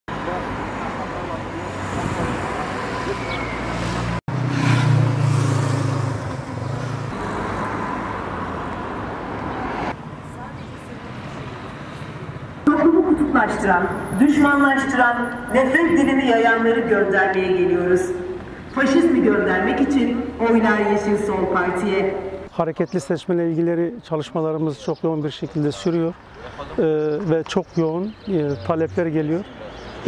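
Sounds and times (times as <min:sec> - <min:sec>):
vehicle engine hum: 0:00.1 - 0:16.2
road traffic noise: 0:00.1 - 0:30.0.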